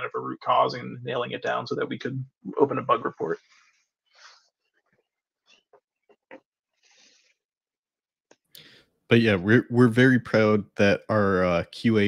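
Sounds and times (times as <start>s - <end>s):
soft breath: 6.8s - 7.5s.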